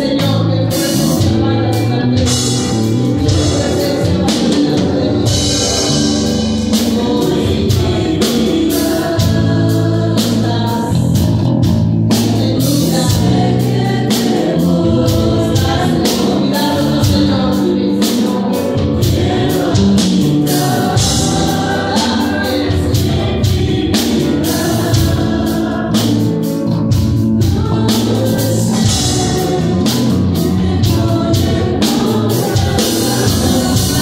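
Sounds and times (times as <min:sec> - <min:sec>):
drum kit with cymbal crashes: 0:00.0 - 0:34.0
electric bass: 0:00.0 - 0:34.0
people singing: 0:00.0 - 0:34.0.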